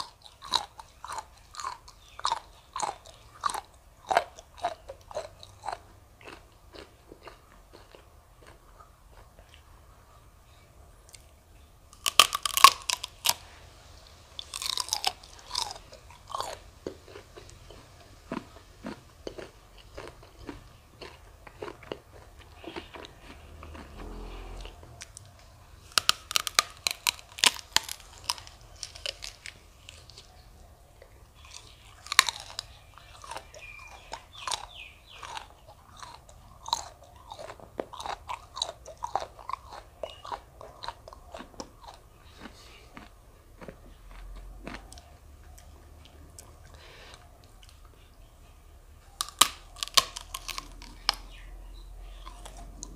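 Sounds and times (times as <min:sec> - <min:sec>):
crisp crunching bites: 0:00.0 - 0:08.6, 0:11.9 - 0:13.5, 0:14.4 - 0:25.2, 0:25.8 - 0:30.3, 0:31.4 - 0:45.0, 0:49.2 - 0:51.5
wet chewing: 0:00.0 - 0:10.0, 0:11.0 - 0:48.2, 0:49.0 - 0:52.9.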